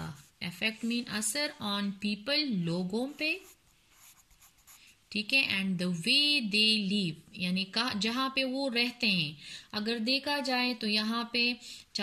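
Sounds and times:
pen scratching on paper: 0:02.9 - 0:04.9.

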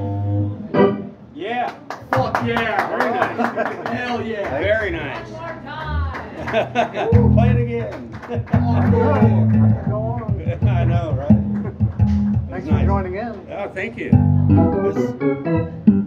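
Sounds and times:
electric guitar riff: 0:00.0 - 0:01.3, 0:08.4 - 0:13.1, 0:14.1 - 0:16.0.

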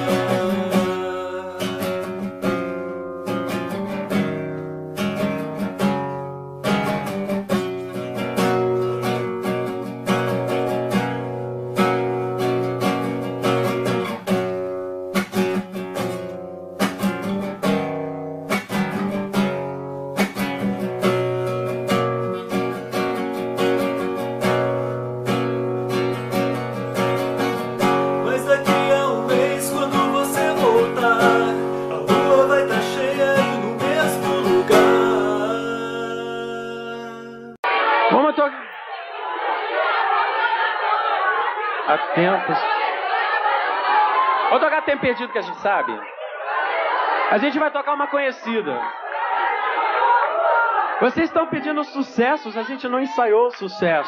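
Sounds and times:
acoustic guitar strumming: 0:00.0 - 0:37.6.

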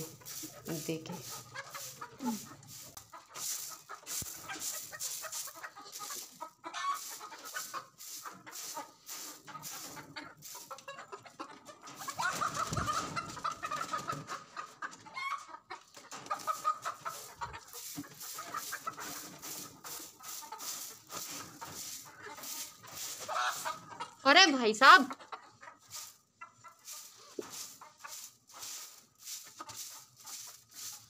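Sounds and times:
broom sweeping floor: 0:00.0 - 0:10.9, 0:16.2 - 0:24.0, 0:25.8 - 0:31.0
hens clucking and squawking: 0:00.0 - 0:31.0.

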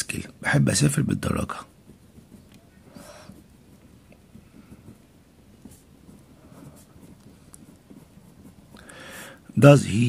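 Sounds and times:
pen scratching on paper: 0:00.5 - 0:10.0.

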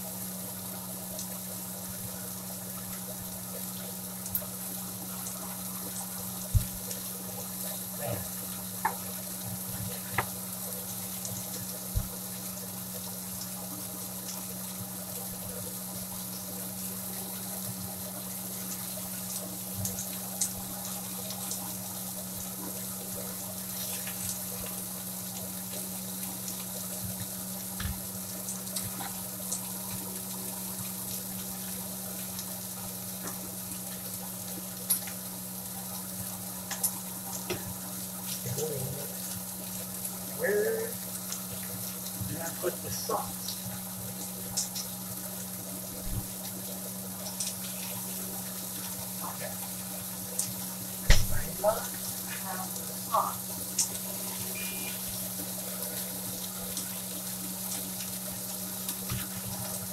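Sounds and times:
burger patty sizzling in skillet: 0:00.0 - 0:59.9.

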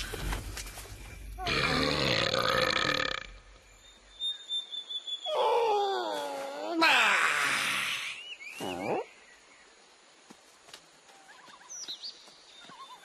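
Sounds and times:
cartoon creature cry and yell: 0:05.3 - 0:08.2.

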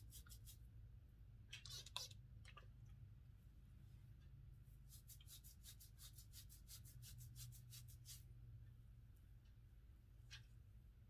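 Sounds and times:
low steady hum: 0:00.0 - 0:11.0
fingers rustling hair: 0:04.8 - 0:08.3.

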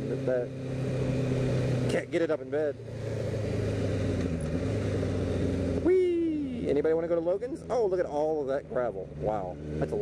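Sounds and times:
motorcycle engine cruising: 0:00.0 - 0:10.0.

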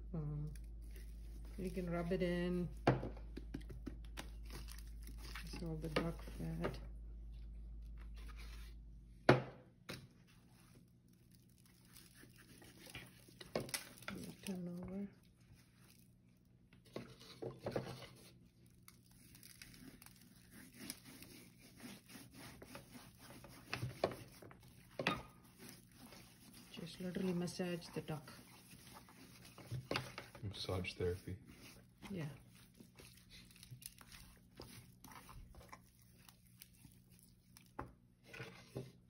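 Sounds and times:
hands rubbing wet skin: 0:20.0 - 0:37.7.

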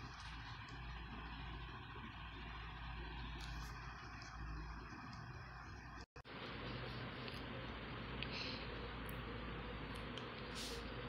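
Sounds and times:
faint low background hum: 0:00.0 - 0:11.0.

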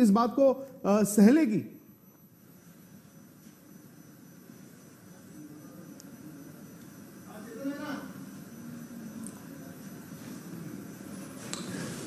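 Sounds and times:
electrical hum and hiss: 0:00.0 - 0:12.0
high-pitched whine: 0:00.0 - 0:12.0.

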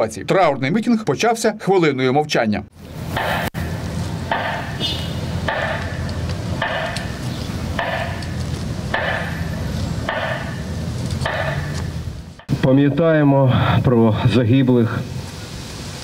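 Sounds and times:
steady low hum: 0:02.8 - 0:15.6.

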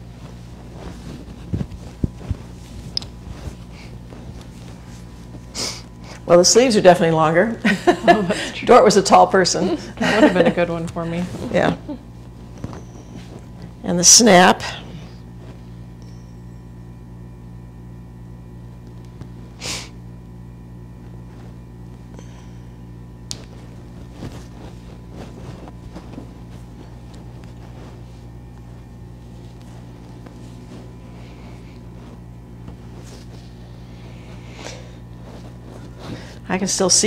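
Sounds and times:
jacket fabric rustling: 0:00.0 - 0:13.8, 0:20.7 - 0:22.2, 0:22.9 - 0:37.0
low electrical hum: 0:00.0 - 0:37.0.

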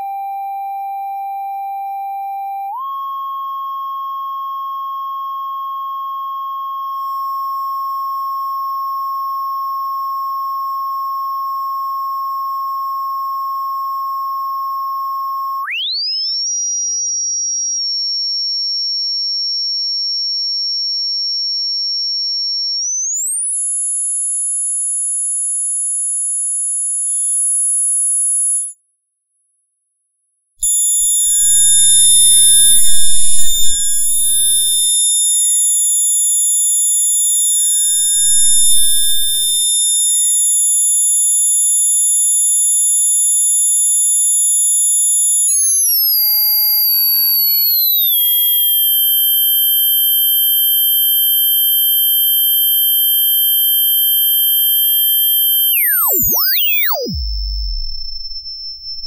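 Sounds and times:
electronic test tones: 0:30.6 - 0:35.2, 0:37.4 - 0:40.0, 0:45.3 - 0:59.0.

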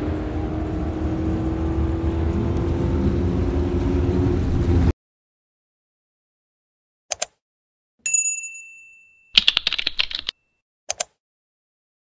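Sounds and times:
mouse clicks: 0:07.1 - 0:07.4, 0:10.9 - 0:11.2
bell-like notification ding: 0:08.1 - 0:09.4
keyboard typing: 0:09.4 - 0:11.2.

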